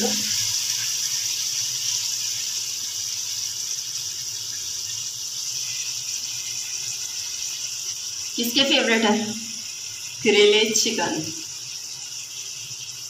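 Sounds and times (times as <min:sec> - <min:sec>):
food hissing in a pot: 0:00.0 - 0:13.0.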